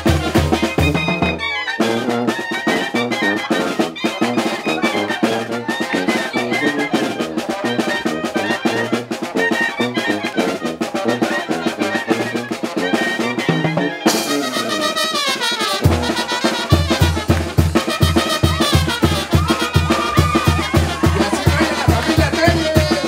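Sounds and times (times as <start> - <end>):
brass band playing dance tune: 0.0 - 23.0.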